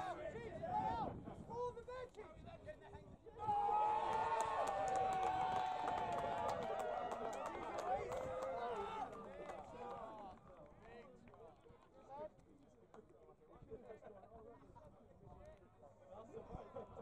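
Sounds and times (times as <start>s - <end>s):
spectators shouting and cheering: 3.4s - 10.2s
sharp claps: 4.1s - 11.4s.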